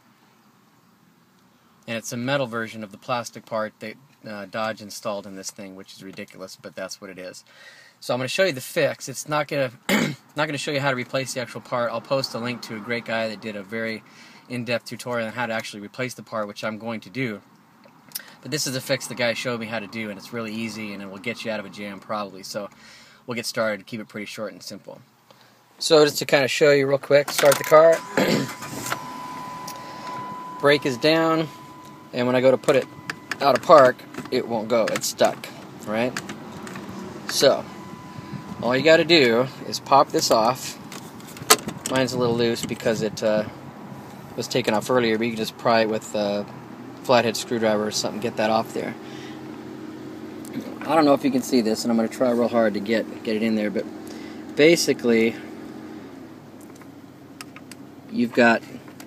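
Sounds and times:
thin steady whine: 25.8 - 59.0
car engine idling: 27.1 - 59.0.

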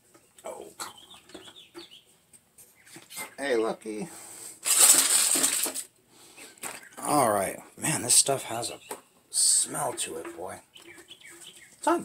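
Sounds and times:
aluminium foil crinkling: 4.6 - 5.9.

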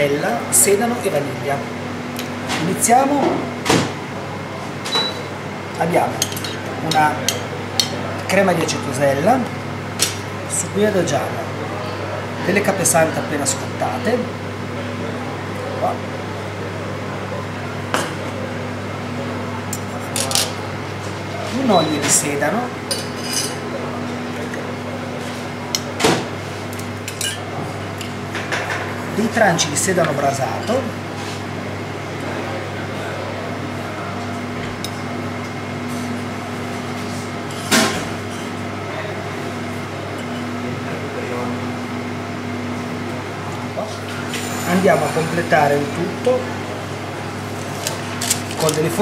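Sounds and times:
kitchen machine hum: 0.0 - 49.0
knife clinking on metal counter: 22.9 - 23.6, 27.0 - 28.8.

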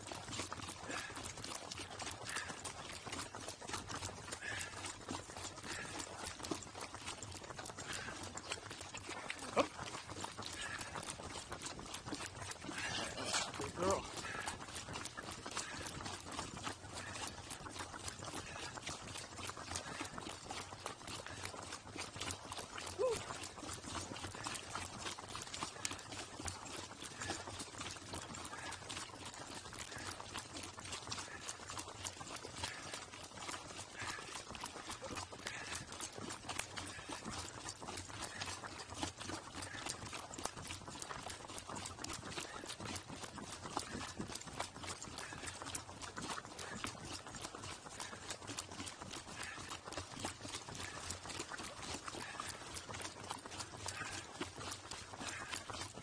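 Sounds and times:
hooves clip-clopping on pavement: 0.0 - 56.0.

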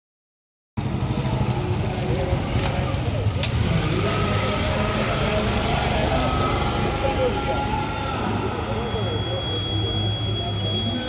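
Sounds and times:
indistinct crowd voices: 0.8 - 11.0.

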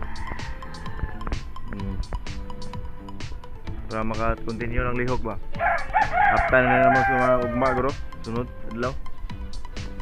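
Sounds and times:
rooster crowing: 0.0 - 1.4, 5.6 - 7.9
background music with beat: 0.0 - 10.0.

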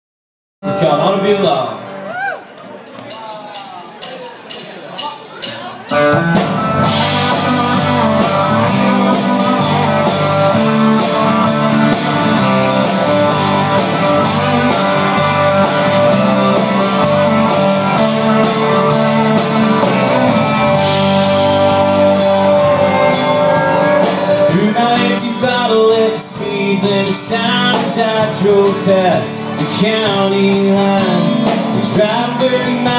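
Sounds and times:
country rock band playing: 0.6 - 32.9
steady drum beat: 3.1 - 32.9.

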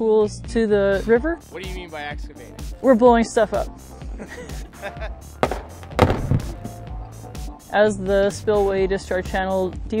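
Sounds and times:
background music: 0.0 - 10.0
explosive blast with rumble: 5.4 - 6.9.

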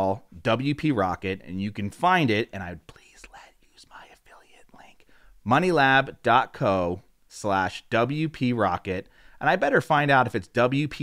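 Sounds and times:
man whispering: 2.5 - 5.4.

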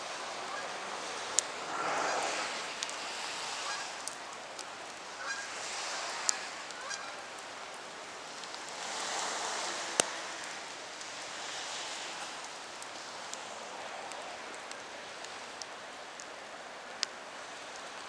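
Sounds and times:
steady hiss: 0.0 - 18.0
geese honking overhead: 0.3 - 0.8, 3.5 - 4.2, 5.0 - 7.3.

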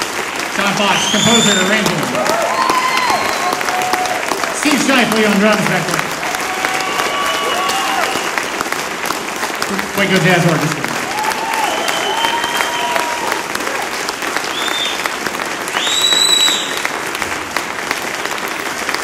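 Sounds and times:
audience applauding: 0.0 - 19.0
shouted cheer: 0.6 - 5.4, 6.2 - 8.6, 10.0 - 15.1, 15.7 - 16.9
whistles from crowd: 0.9 - 1.9, 2.8 - 3.7, 6.9 - 8.4, 11.3 - 13.4, 14.4 - 15.1, 15.7 - 16.9.

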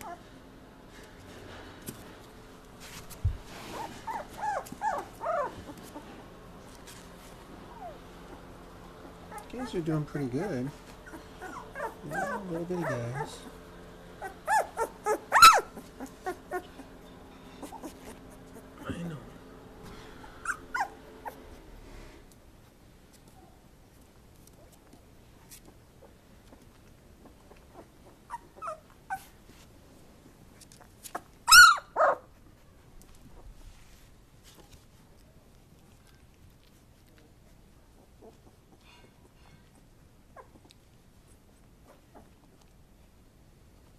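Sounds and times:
puppies squeaking and whimpering: 3.5 - 6.1, 7.7 - 19.0, 20.4 - 21.6, 27.2 - 29.4, 30.8 - 32.3.

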